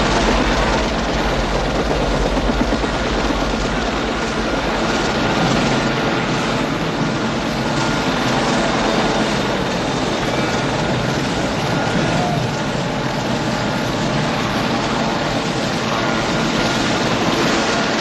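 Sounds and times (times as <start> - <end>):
helicopter rotors and engine: 0.0 - 18.0.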